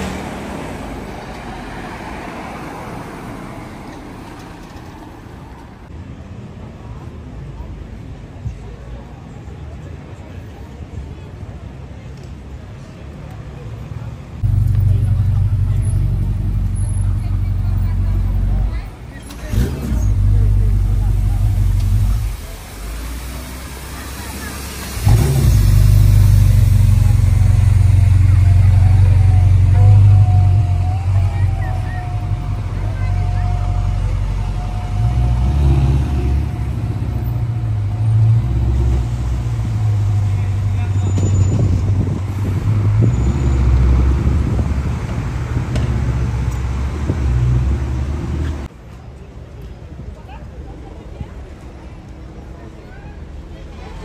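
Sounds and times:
sports car engine rumbling: 0:14.3 - 0:48.7
engine revs rising and falling: 0:23.0 - 0:40.9.

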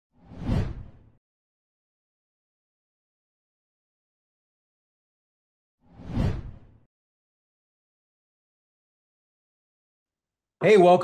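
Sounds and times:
whoosh: 0:00.2 - 0:01.2, 0:05.9 - 0:06.9.

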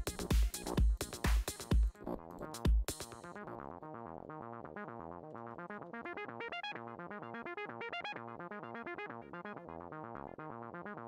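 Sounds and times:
synthesizer arpeggio: 0:04.0 - 0:11.0.

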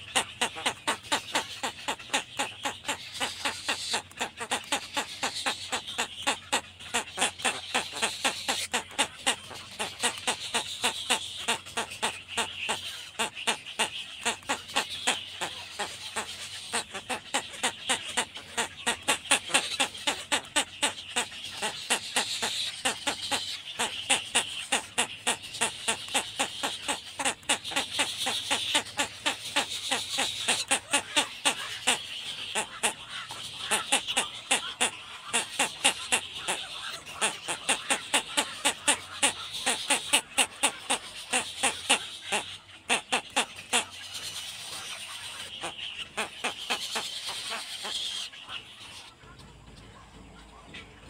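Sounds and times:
chicks ticking calls: 0:00.0 - 0:51.0.

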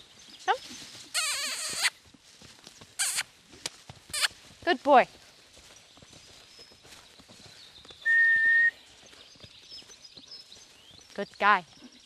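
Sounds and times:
faint birdsong: 0:00.0 - 0:03.2, 0:04.2 - 0:12.0
horse hoofbeats on sand: 0:00.0 - 0:12.0
short loud whistle: 0:08.1 - 0:08.8.

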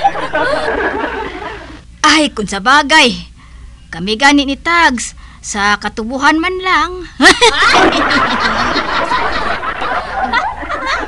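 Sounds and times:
people laughing: 0:00.0 - 0:01.8, 0:07.2 - 0:11.0.

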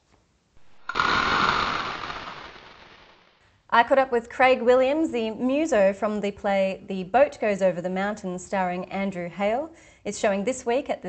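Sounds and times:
loud rush of dense noise: 0:00.6 - 0:03.3.

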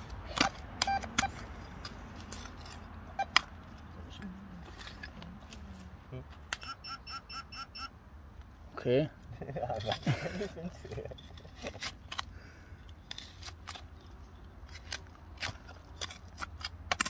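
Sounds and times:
metal detector rapid beeps: 0:00.8 - 0:01.4, 0:06.6 - 0:07.9
trowel scraping in soil: 0:01.3 - 0:03.0.

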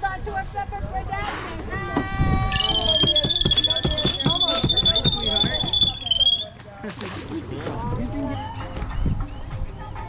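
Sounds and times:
people talking: 0:00.0 - 0:08.5
high-pitched whistle: 0:02.5 - 0:06.8.

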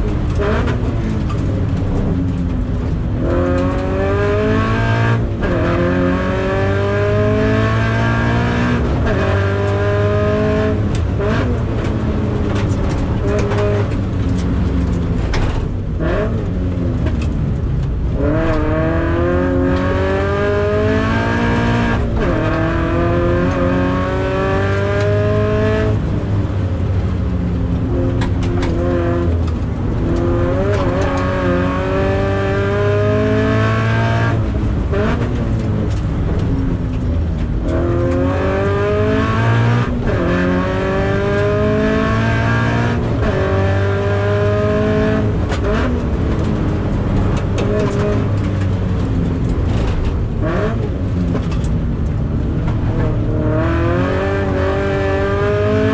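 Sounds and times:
car engine accelerating hard: 0:00.0 - 0:55.9.

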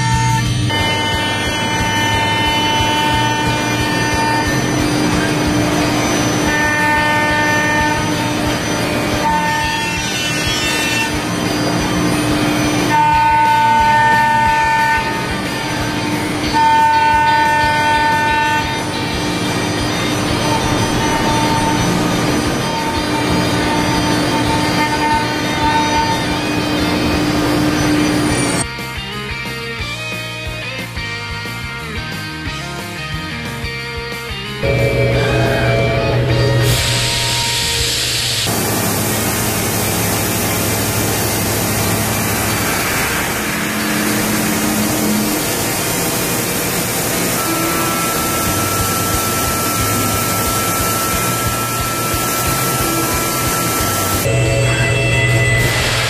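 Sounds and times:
cutter ringing tone: 0:00.0 - 0:28.6, 0:34.6 - 0:38.4, 0:39.2 - 0:56.0
milling machine whining: 0:00.0 - 0:28.7, 0:34.6 - 0:56.0
coolant spray hiss: 0:36.6 - 0:54.2.

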